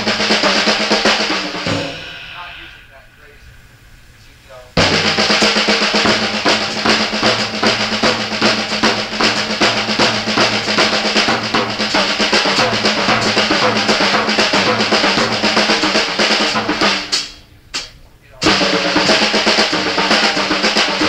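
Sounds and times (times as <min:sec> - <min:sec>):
drum kit snare and cymbal strokes: 0:00.0 - 0:21.0.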